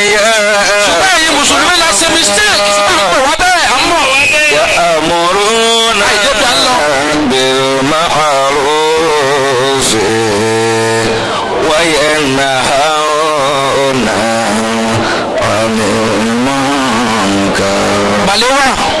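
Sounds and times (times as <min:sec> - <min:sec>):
man singing a chant: 0:00.0 - 0:03.3, 0:04.5 - 0:19.0.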